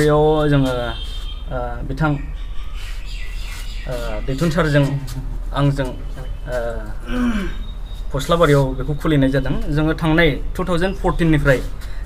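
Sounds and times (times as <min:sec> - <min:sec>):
man speaking: 0:00.0 - 0:02.4, 0:03.9 - 0:07.5, 0:08.1 - 0:11.8
breath noise: 0:07.0 - 0:07.9, 0:11.7 - 0:12.0.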